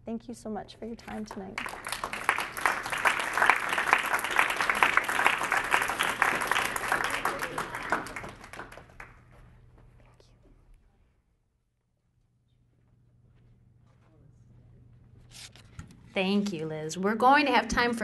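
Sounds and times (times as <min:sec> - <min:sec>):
audience applauding: 0:01.6 - 0:09.4.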